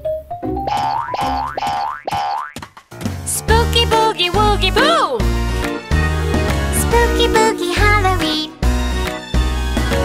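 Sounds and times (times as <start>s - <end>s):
cartoon boing effects: 0.7s - 2.6s
light music: 3.0s - 10.0s.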